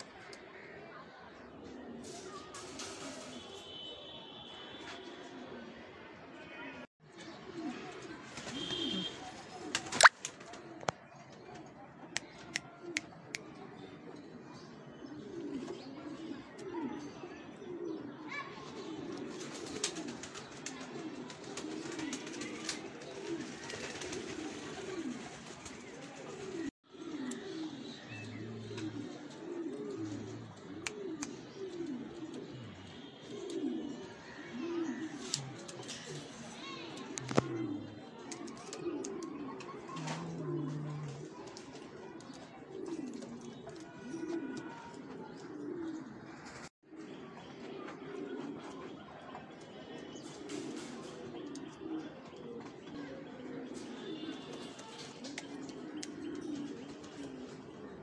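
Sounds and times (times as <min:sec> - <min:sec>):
pigeons cooing: 0:00.2 - 0:03.5, 0:07.1 - 0:10.9, 0:11.5 - 0:58.0.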